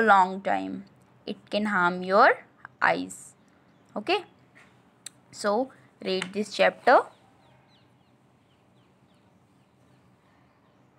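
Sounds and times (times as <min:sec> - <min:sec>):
bird chirping: 0:02.8 - 0:10.9.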